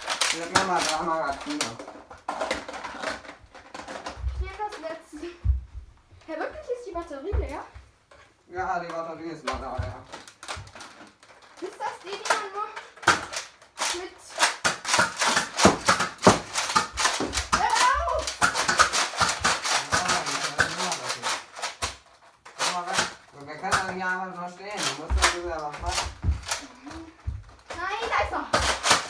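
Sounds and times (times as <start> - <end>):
plastic toy blaster clicking: 0.0 - 1.6, 11.6 - 23.2
child's voice: 4.3 - 5.5, 13.9 - 14.4, 17.6 - 18.3, 26.6 - 28.6.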